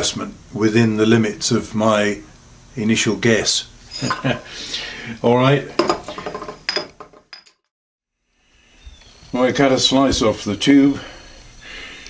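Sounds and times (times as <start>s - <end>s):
metal parts clinking on metal plate: 5.8s - 7.6s.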